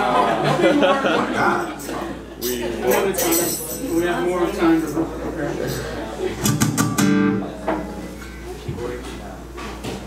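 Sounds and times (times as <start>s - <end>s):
acoustic guitar strumming: 6.5s - 7.6s.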